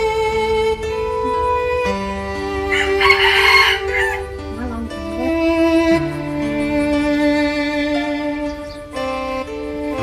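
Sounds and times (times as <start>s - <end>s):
violin music: 0.0s - 10.0s
rooster crowing: 2.6s - 4.4s.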